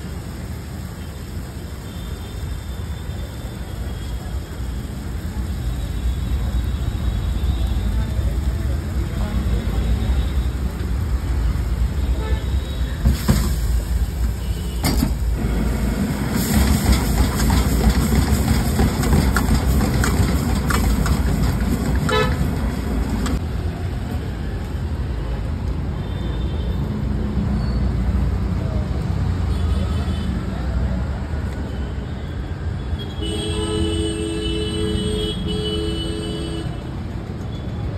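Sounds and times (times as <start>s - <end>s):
street traffic: 0.0s - 37.9s
vehicle horn toot: 12.0s - 13.0s, 22.1s - 22.4s, 33.0s - 36.8s.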